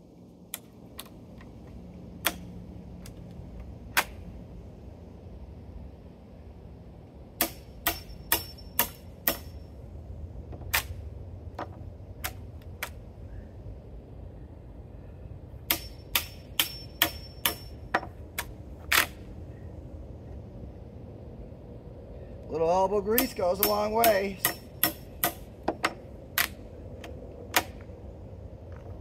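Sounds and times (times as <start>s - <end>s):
steady low rumble: 0.0s - 29.0s
hammer striking chisel: 7.4s - 9.5s, 15.7s - 18.1s, 23.2s - 26.0s.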